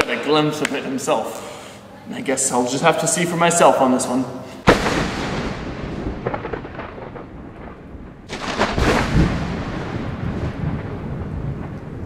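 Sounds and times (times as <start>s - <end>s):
loud thunder crack: 4.6s - 12.0s
thunder rumbling: 4.6s - 12.0s.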